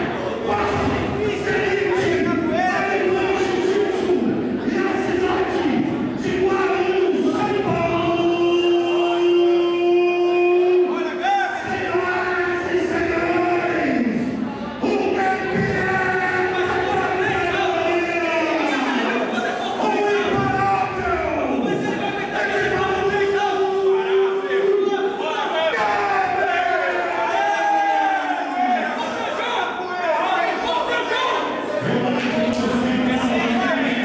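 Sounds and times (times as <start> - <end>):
crowd noise: 0.0 - 34.0.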